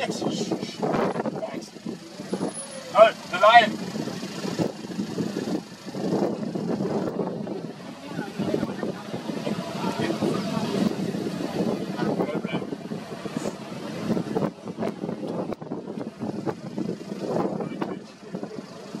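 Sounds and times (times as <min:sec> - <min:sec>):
car engine idling: 0:00.0 - 0:19.0
low indistinct voices: 0:00.0 - 0:19.0.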